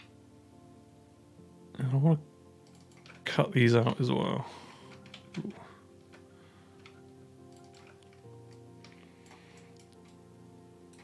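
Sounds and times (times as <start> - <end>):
sustained chords music: 0.0 - 11.0
computer mouse clicks: 2.6 - 3.2, 6.8 - 10.2.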